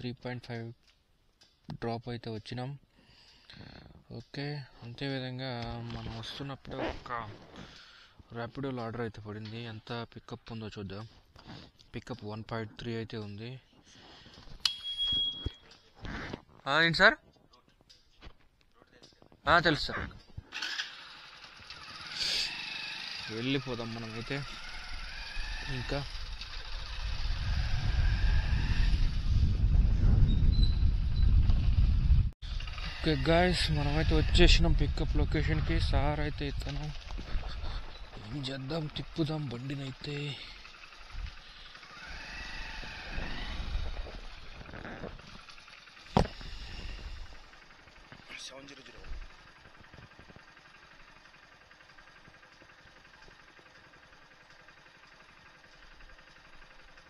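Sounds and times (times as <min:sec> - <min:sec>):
motorcycle moving off: 0:05.6 - 0:08.0, 0:19.7 - 0:57.0.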